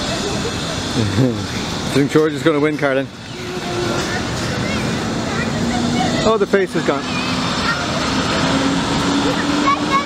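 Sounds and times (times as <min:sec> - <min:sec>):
faint distant voices: 0:00.0 - 0:10.0
road traffic hum: 0:00.0 - 0:10.0.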